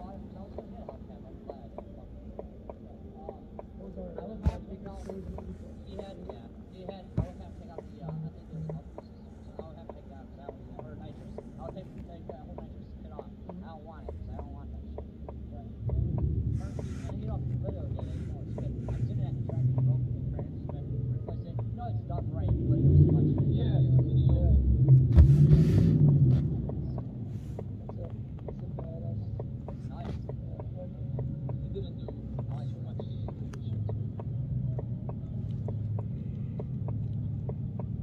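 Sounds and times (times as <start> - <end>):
muffled voices talking: 0.0 - 37.5
car engine rumble: 0.0 - 38.0.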